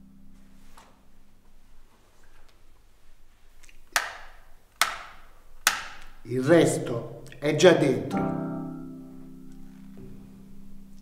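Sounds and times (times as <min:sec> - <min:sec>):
hand claps with echo: 0:03.9 - 0:06.1.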